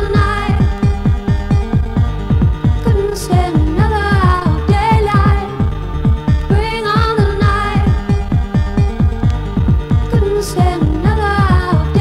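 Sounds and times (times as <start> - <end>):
fast kick drum: 0.0 - 12.0.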